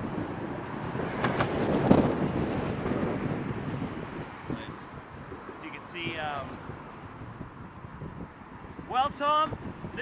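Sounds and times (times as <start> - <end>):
traffic noise: 0.0 - 10.0
wind buffeting microphone: 0.0 - 10.0.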